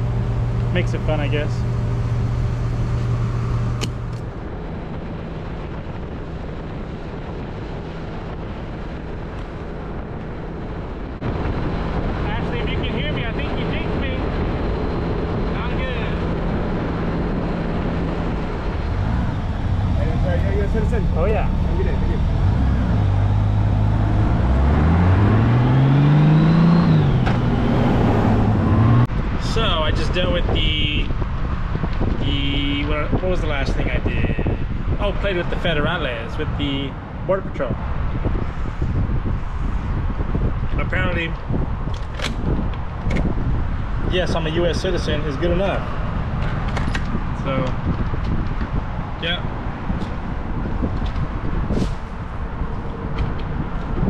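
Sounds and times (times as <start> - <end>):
road and wind noise: 0.0 - 54.0.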